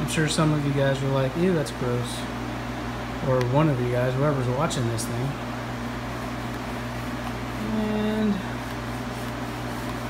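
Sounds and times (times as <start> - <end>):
man talking: 0.0 - 2.3, 3.2 - 5.4, 7.6 - 8.6
kitchen machinery hum: 0.0 - 10.0.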